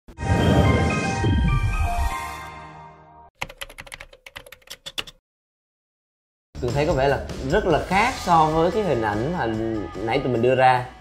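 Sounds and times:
computer keyboard typing: 0:03.4 - 0:05.2.

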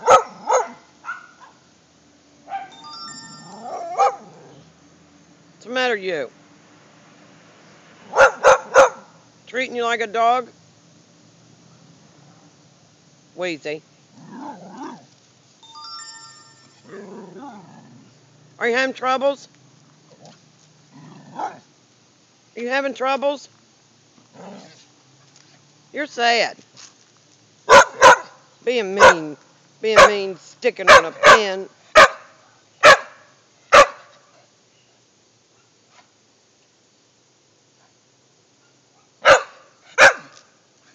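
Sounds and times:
dog barking: 0:00.0 - 0:01.6, 0:02.5 - 0:02.8, 0:03.7 - 0:04.3, 0:08.1 - 0:09.2, 0:27.7 - 0:28.4, 0:29.0 - 0:29.3, 0:30.0 - 0:30.2, 0:30.9 - 0:34.3, 0:38.6 - 0:40.4
ringing steady tones: 0:02.7 - 0:04.0, 0:15.6 - 0:17.0
dog whining: 0:03.2 - 0:04.6.

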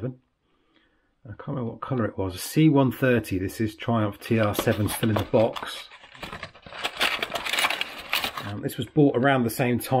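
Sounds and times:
cardboard and plastic rustling: 0:04.3 - 0:08.6.

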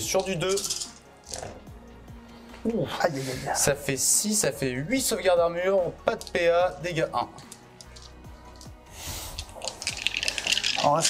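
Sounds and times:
dice clattering in hand: 0:00.2 - 0:01.6, 0:06.1 - 0:11.0.

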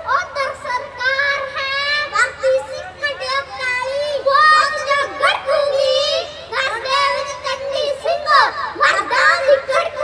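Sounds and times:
boys chanting a poem: 0:00.0 - 0:10.0.

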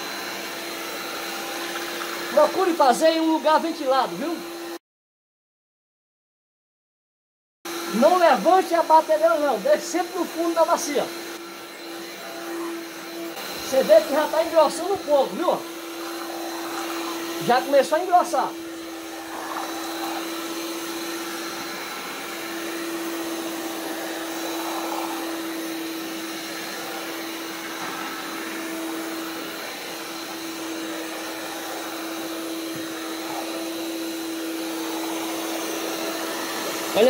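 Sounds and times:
electric hand mixer motor hum: 0:00.0 - 0:04.8, 0:07.7 - 0:37.0
beaters churning thick batter: 0:12.5 - 0:37.0.

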